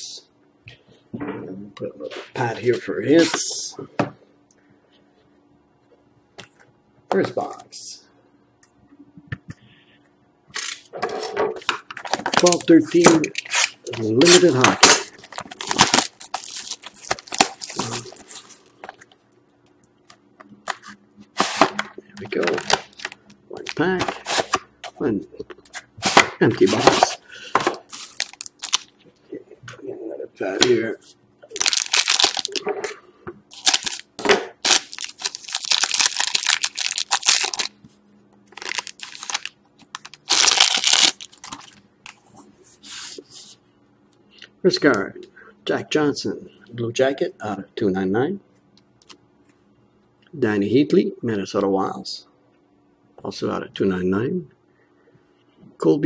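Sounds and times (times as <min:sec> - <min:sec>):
shrink wrap tearing and crinkling: 0:12.0 - 0:18.7, 0:22.3 - 0:24.6, 0:27.9 - 0:29.0, 0:31.5 - 0:32.6, 0:33.5 - 0:37.8, 0:38.5 - 0:41.8.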